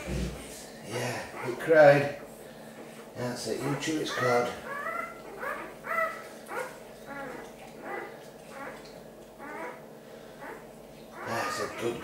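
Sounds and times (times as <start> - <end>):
puppy squeaky cries: 3.6 - 8.8, 9.4 - 9.8, 11.2 - 12.0.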